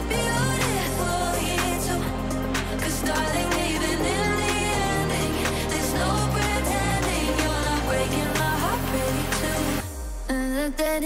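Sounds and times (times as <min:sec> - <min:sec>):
electronic dance music: 0:00.0 - 0:11.0.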